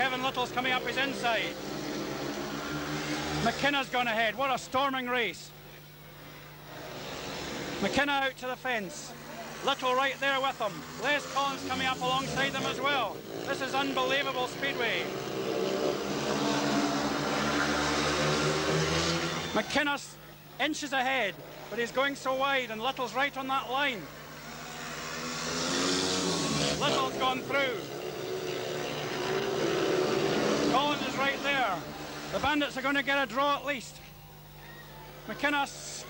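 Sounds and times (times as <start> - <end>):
motorcycles racing: 0.0 - 4.6, 5.8 - 36.0.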